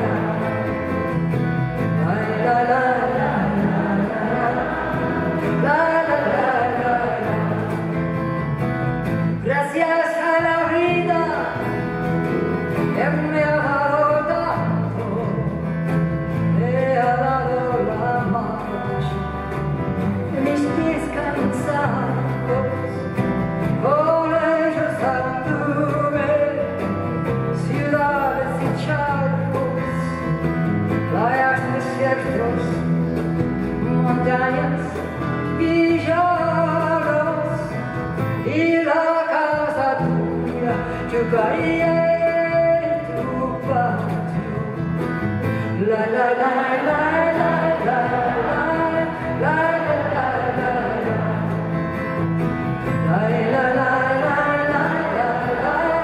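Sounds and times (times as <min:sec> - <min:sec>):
acoustic guitar strumming: 0:00.0 - 0:56.0
person singing folk song: 0:00.0 - 0:56.0.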